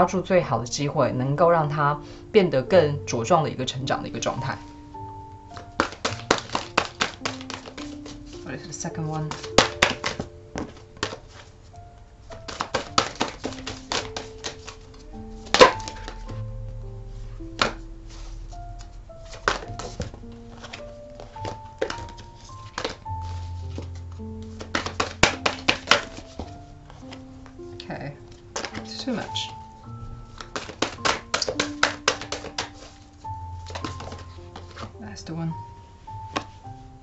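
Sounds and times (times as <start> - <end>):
soft music of held tones: 0.0 - 37.0
cards being shuffled by hand: 5.6 - 8.5, 9.2 - 11.6, 12.3 - 16.4, 19.3 - 27.2, 28.3 - 29.3, 30.3 - 35.0
sharp taps and clicks: 30.4 - 32.7.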